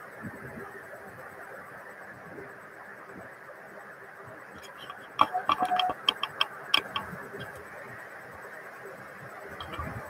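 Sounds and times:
short squeak: 0:04.6 - 0:07.6
sharp clicks and knocks: 0:04.6 - 0:07.7, 0:09.6 - 0:10.0.

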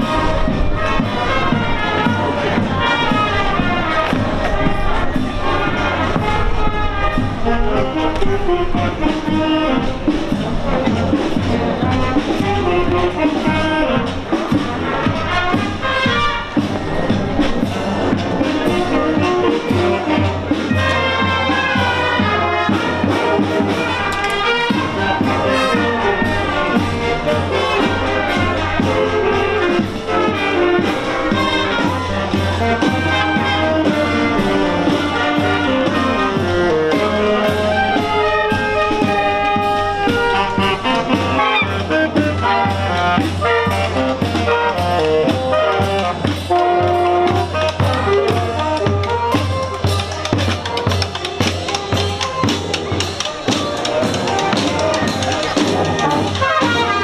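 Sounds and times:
brass and saxophones: 0:00.0 - 0:57.0
marching band playing: 0:00.0 - 0:57.0
steady drum beat: 0:00.0 - 0:57.0.

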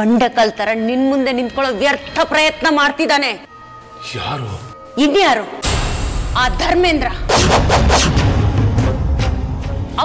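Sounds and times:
heavy percussive hits: 0:05.6 - 0:09.0.

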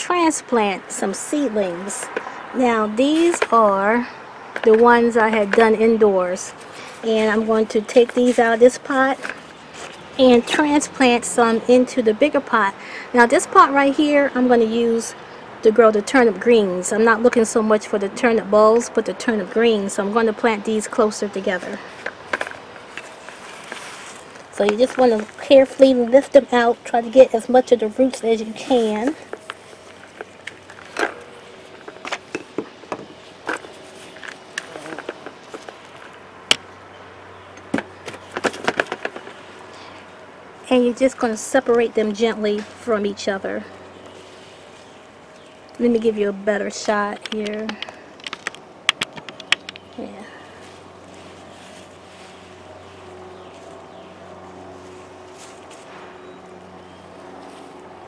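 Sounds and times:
soil and plastic pot rustling: 0:00.1 - 0:15.1, 0:16.1 - 0:36.8, 0:37.6 - 0:58.0.

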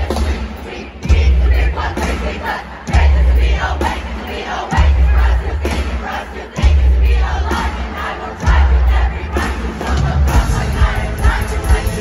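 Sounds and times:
crowd yelling and singing along: 0:00.0 - 0:12.0
live band music: 0:06.6 - 0:12.0.

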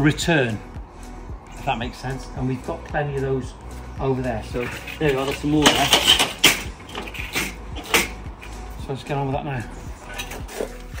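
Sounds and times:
metal fence parts being handled: 0:04.6 - 0:08.6, 0:10.0 - 0:11.0.

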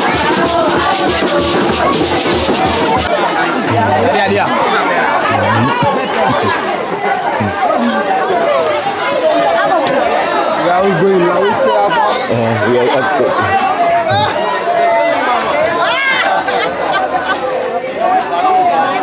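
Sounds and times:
crowd talking and calling out: 0:00.0 - 0:19.0.

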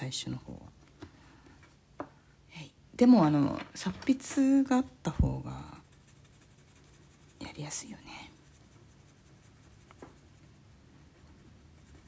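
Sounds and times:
blending stump rubbing paper: 0:05.2 - 0:12.0.

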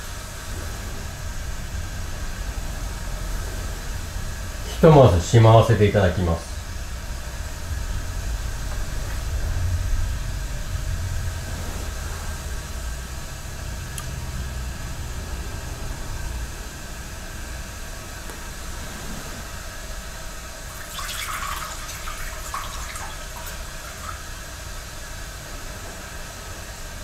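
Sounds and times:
steady low rumble: 0:00.0 - 0:26.6
faint hiss: 0:00.0 - 0:27.0.

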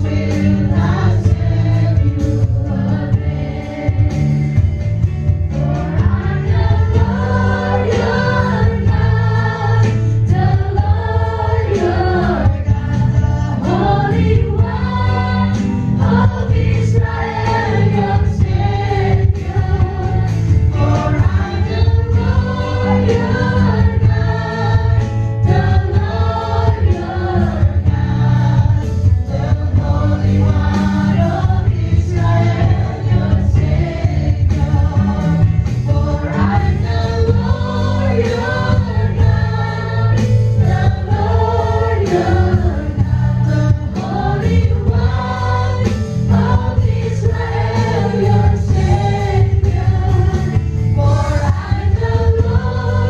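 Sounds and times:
drum kit beat: 0:00.0 - 0:53.0
lead singer: 0:00.0 - 0:53.0
many voices singing along: 0:00.0 - 0:53.0.

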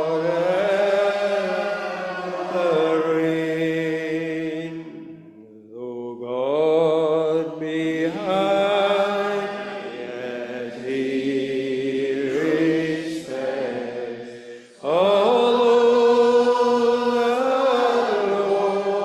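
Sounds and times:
congregation singing unaccompanied: 0:00.0 - 0:19.0.

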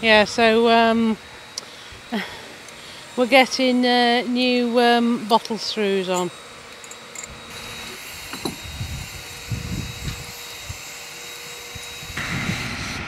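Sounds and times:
hoist engine running with whine: 0:00.0 - 0:13.0
wind rumble on microphone: 0:08.4 - 0:10.8, 0:11.7 - 0:13.0.

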